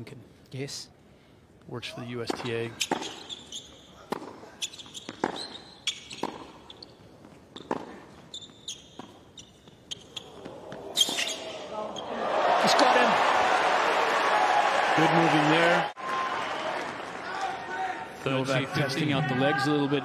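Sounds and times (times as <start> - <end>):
rackets striking tennis ball: 2.3 - 3.3, 4.1 - 6.7, 7.6 - 8.0
shoe squeaks on court: 2.8 - 12.1
crowd applause: 12.2 - 17.7.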